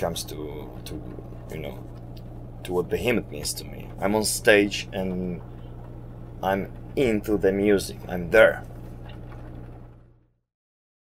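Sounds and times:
generator low buzz: 0:00.0 - 0:10.5.

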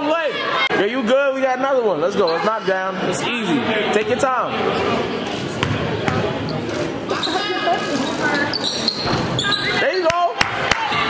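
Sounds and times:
crowd chatter: 0:00.0 - 0:11.0
basketball bouncing on hardwood floor: 0:05.6 - 0:06.3.

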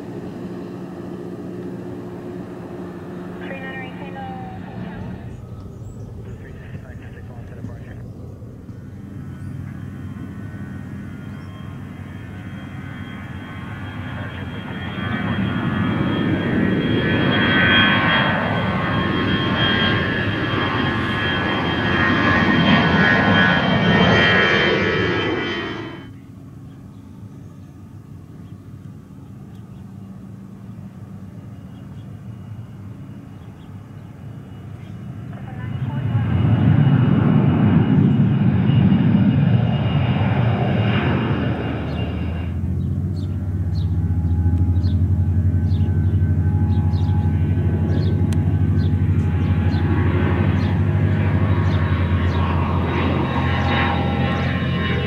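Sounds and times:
jet airliner engine roar: 0:00.0 - 0:55.0.

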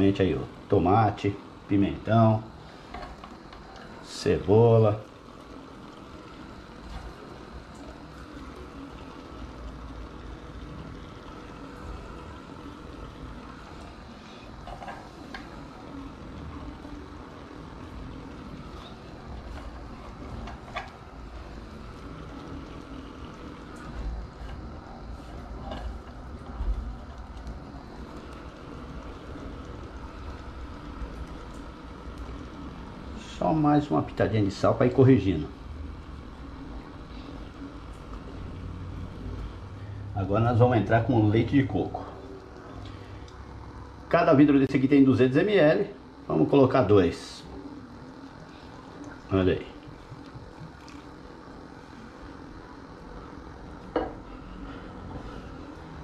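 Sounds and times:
stew simmering with bubbling hiss: 0:00.0 - 0:56.0.

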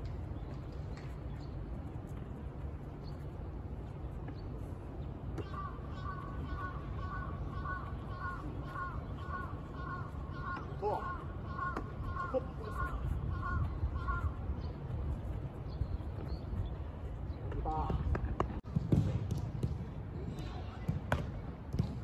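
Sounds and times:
bird calling: 0:05.4 - 0:14.9.

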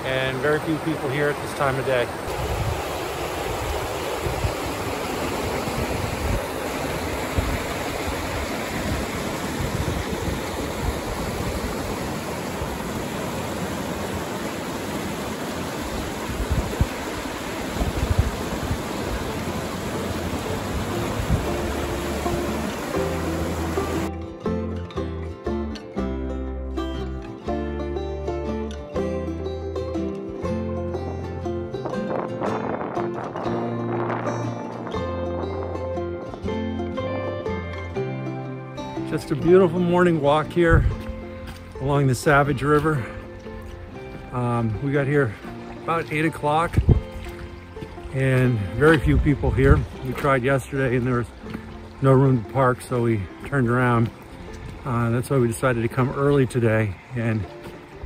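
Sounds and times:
river rushing over rocks: 0:00.0 - 0:24.1, 0:38.8 - 0:58.0
background music with bass line: 0:20.1 - 0:58.0.

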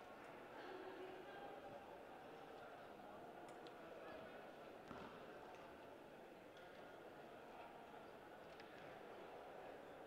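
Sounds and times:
low murmur of crowd in hall: 0:00.0 - 0:10.0
faint clicks from court play: 0:03.4 - 0:03.8, 0:04.8 - 0:05.8, 0:06.5 - 0:07.0, 0:08.4 - 0:09.2.

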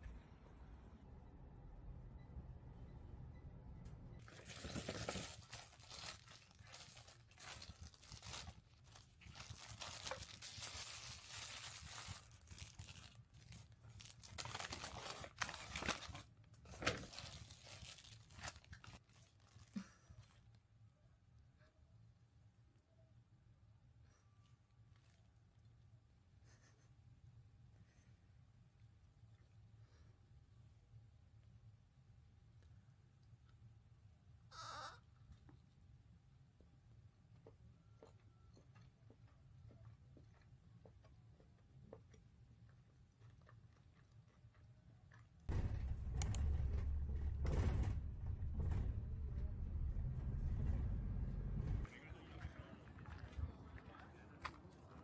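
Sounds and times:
plastic wrapper crinkling and tearing: 0:04.2 - 0:20.4.

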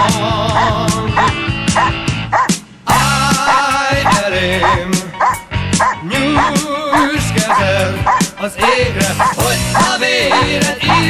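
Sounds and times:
background music: 0:00.0 - 0:11.0
dog barking: 0:00.6 - 0:11.0.

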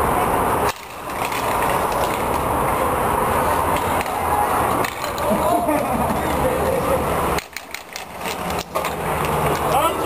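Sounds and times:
inline skates rolling: 0:00.6 - 0:10.0
hockey sticks clacking on puck: 0:00.7 - 0:02.5, 0:03.4 - 0:10.0.

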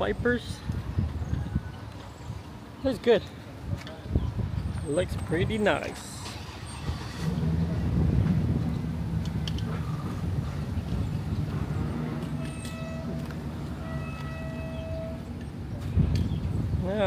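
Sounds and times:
engine rumbling: 0:03.6 - 0:17.0.

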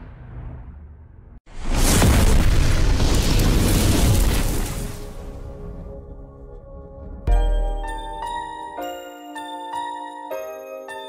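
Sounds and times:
explosion booming rumble: 0:01.5 - 0:06.2.

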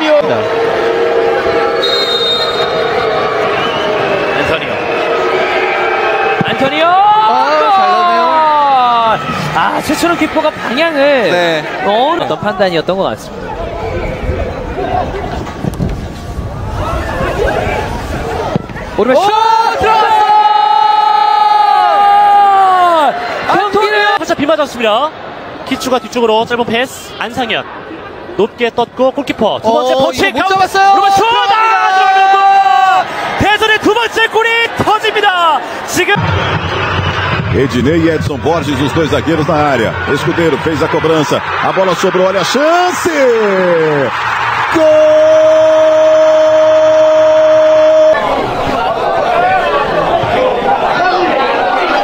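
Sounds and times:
crowd noise: 0:00.0 - 0:52.0.

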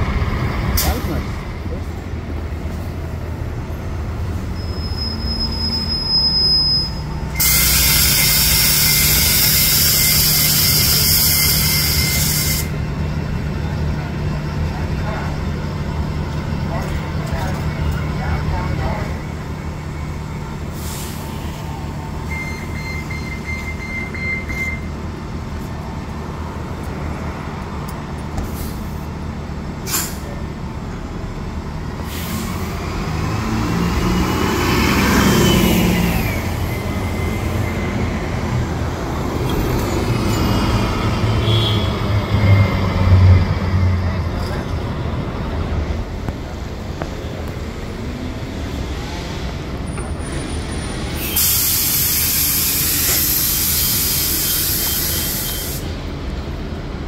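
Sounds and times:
bus engine idling: 0:00.0 - 0:33.3, 0:43.4 - 0:57.0
bus passing with whining engine: 0:00.0 - 0:57.0
air hiss: 0:51.2 - 0:56.0.

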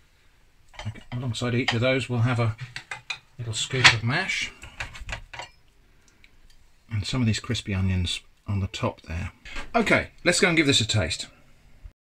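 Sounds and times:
spoon scraping ceramic plate: 0:00.8 - 0:01.8, 0:02.6 - 0:04.0, 0:04.6 - 0:05.6.

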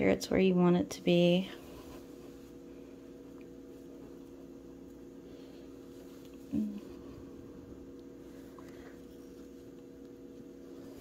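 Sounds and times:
low hum: 0:00.0 - 0:11.0
person humming: 0:06.4 - 0:07.2.

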